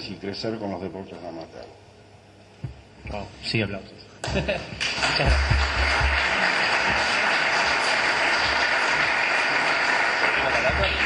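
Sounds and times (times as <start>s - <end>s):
audience applauding: 4.8s - 11.0s.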